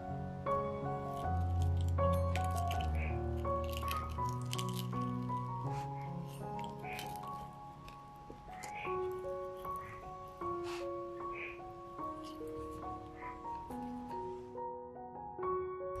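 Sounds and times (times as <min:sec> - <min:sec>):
background music with held notes: 0:00.0 - 0:16.0
pizza cutter crackling through crust: 0:01.0 - 0:10.0.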